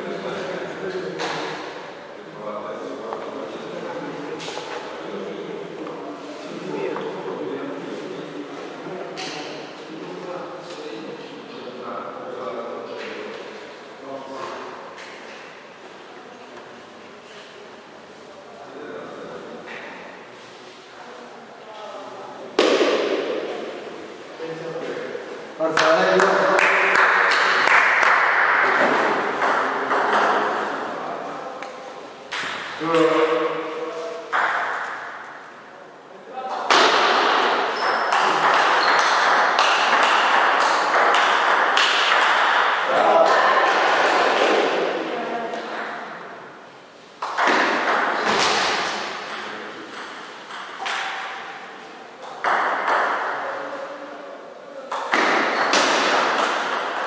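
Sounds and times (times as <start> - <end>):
steady background hiss: 0.0 - 57.0
table tennis ball bouncing: 27.9 - 30.4, 34.3 - 35.3, 36.7 - 42.9, 47.2 - 51.6, 52.2 - 53.4, 54.9 - 57.0.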